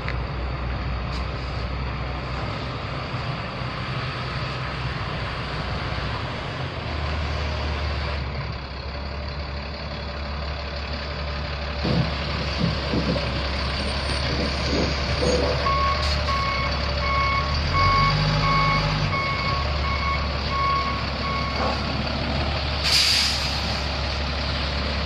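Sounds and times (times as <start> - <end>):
truck diesel engine running: 0.0 - 25.0
air brake hiss: 22.8 - 23.8.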